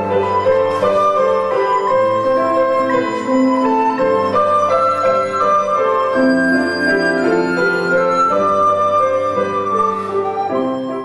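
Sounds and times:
flute melody: 0.0 - 11.0
piano chords: 0.0 - 11.0.

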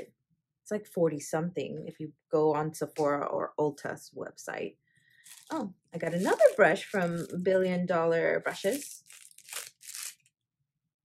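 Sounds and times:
plastic wrap rustling: 5.2 - 7.5, 8.5 - 10.3.

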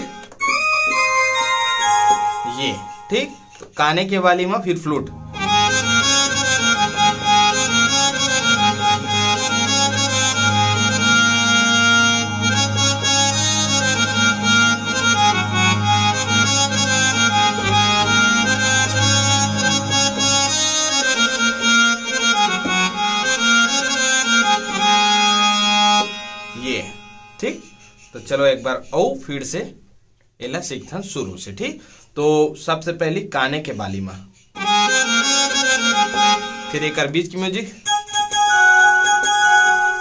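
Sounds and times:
reedy synthesizer melody over chords: 5.1 - 27.7.

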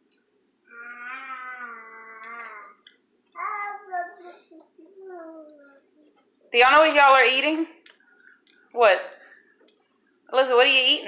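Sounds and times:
drawn-out voice: 0.7 - 2.8, 3.4 - 7.0.

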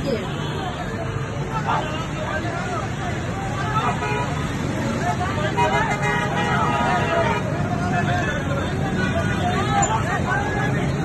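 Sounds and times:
crowd of men shouting: 1.1 - 11.0.

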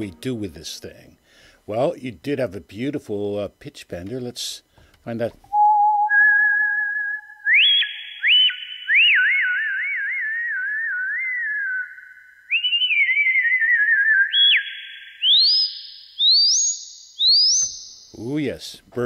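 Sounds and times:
synthesizer warbling whistle tone: 5.6 - 18.0.

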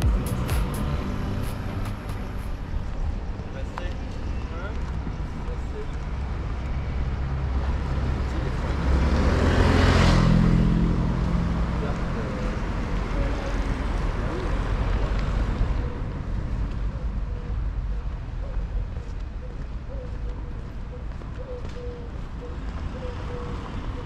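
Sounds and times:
steady traffic background: 0.0 - 24.0
car driving past: 8.7 - 12.4.

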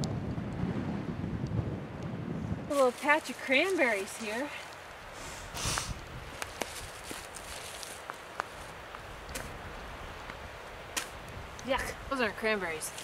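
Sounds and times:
footsteps in dry brush: 2.7 - 9.6
small crackles: 5.7 - 9.5.

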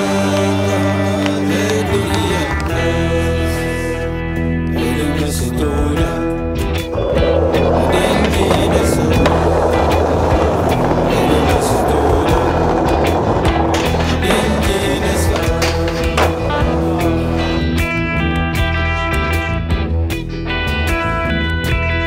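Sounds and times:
skateboard wheels rolling on tiles: 0.0 - 3.0, 6.8 - 18.1
music: 0.0 - 22.0.

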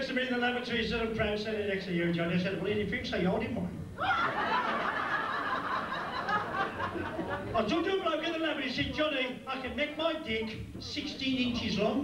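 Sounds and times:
audience laughing: 4.0 - 7.7.

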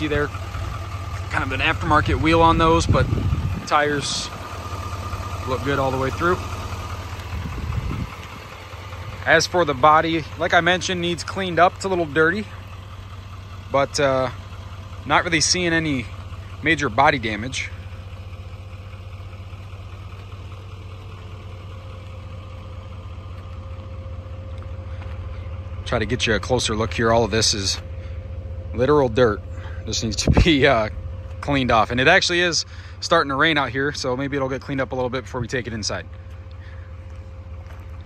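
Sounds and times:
low rumble: 0.0 - 38.0
truck engine idling: 0.0 - 38.0.

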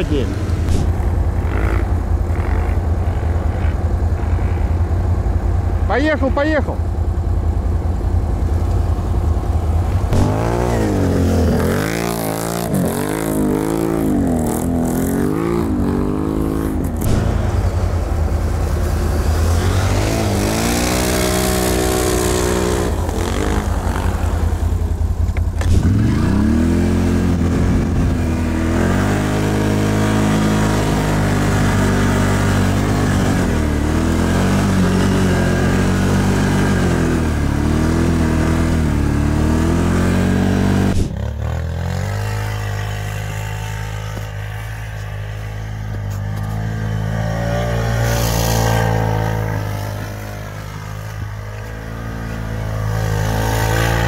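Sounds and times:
atv engine revving in snow: 0.0 - 6.7, 7.8 - 54.0.

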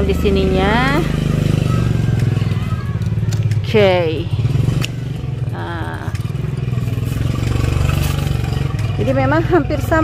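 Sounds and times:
engine low pulsing drone: 0.0 - 10.0.

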